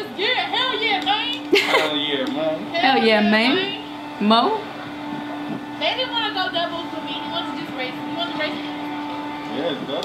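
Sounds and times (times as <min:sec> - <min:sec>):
droning machine hum: 0:00.0 - 0:10.0
muffled voices talking: 0:00.0 - 0:10.0.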